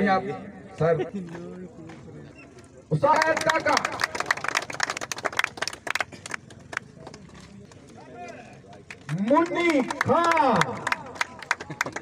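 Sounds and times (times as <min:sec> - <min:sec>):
crowd applauding: 0:03.1 - 0:12.0.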